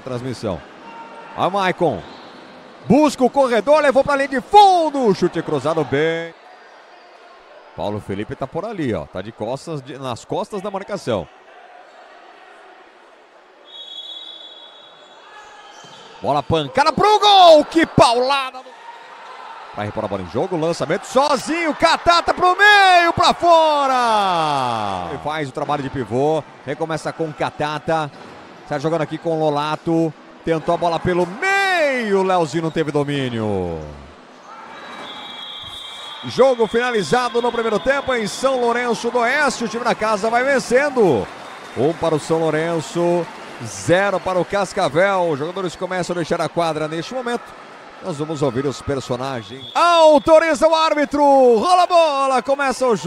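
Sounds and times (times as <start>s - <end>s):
arena crowd noise: 0.0s - 53.0s
high steady whistle: 13.6s - 15.3s, 34.7s - 38.7s, 49.5s - 50.6s.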